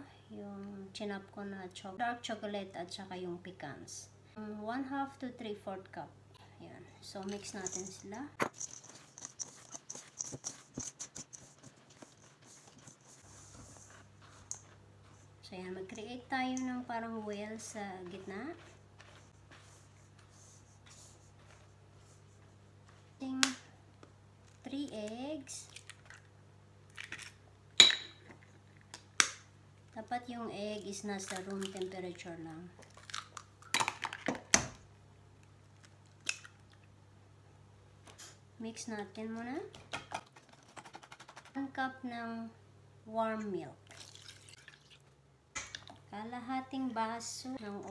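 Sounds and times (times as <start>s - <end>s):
utensil scraping metal bowl: 7.3s - 13.9s
egg cracking on metal bowl: 32.9s - 34.8s.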